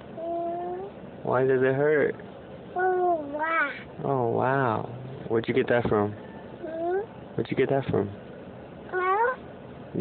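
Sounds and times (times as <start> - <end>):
toddler whimpering: 0.2 - 1.0, 6.6 - 7.1.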